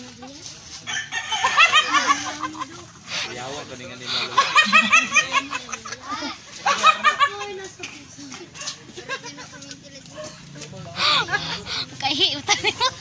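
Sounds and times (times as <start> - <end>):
man laughing: 1.7 - 7.6, 8.6 - 9.8, 10.8 - 13.0.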